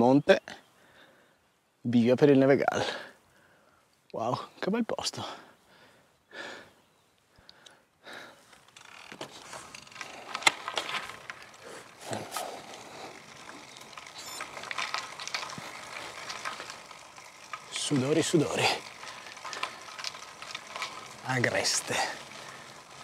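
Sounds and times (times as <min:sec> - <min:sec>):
bike tyres crackling on rough road: 0:05.3 - 0:23.0
bike clicks: 0:07.1 - 0:23.0.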